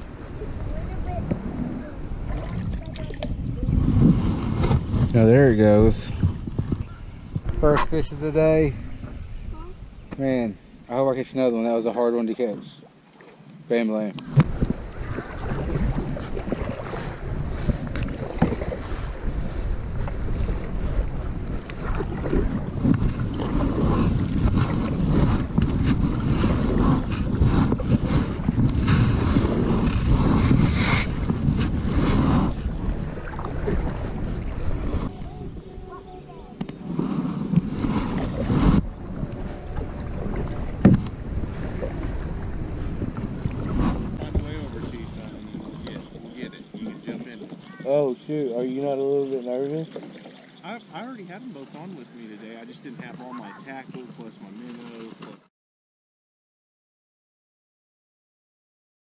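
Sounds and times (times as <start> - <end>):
paddle strokes and drips: 0.0 - 5.2, 12.3 - 55.4
wind rumble on microphone: 0.0 - 11.0, 14.2 - 49.0.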